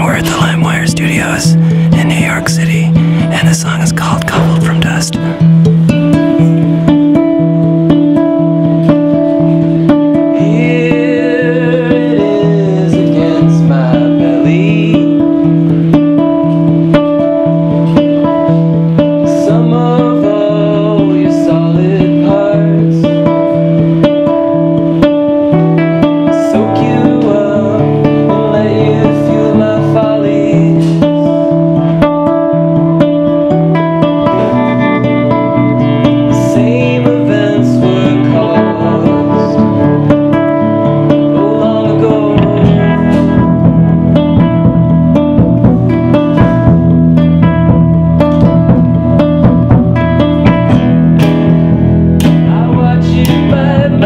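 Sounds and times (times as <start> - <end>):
man singing: 0.0 - 5.5, 10.1 - 16.5, 19.0 - 23.7, 26.1 - 32.3, 34.3 - 44.5, 52.3 - 54.0
acoustic guitar: 0.0 - 54.0
bass guitar: 0.0 - 54.0.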